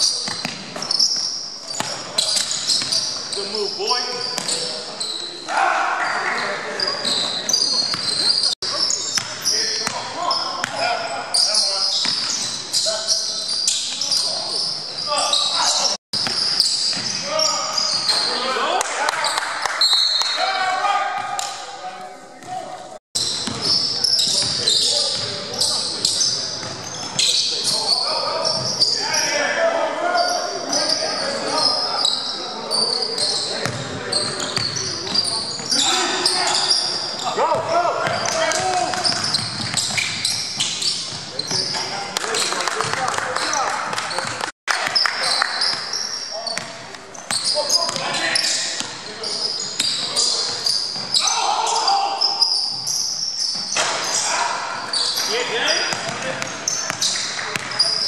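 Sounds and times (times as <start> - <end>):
sneakers squeaking: 0.0 - 58.0
players calling out: 22.4 - 58.0
basketball bouncing: 37.5 - 41.3, 55.9 - 57.8.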